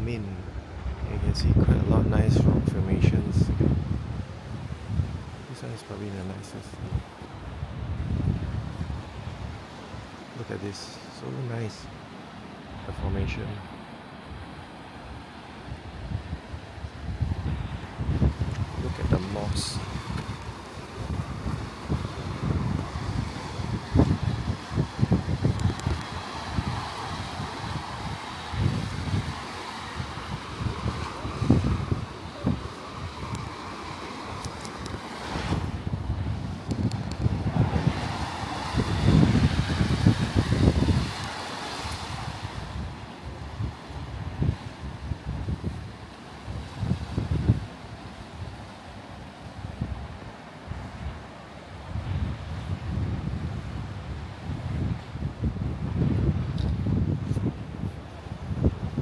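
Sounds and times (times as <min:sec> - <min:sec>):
sea surf on rocks: 0:00.0 - 0:59.0
wind buffeting the microphone: 0:00.0 - 0:59.0.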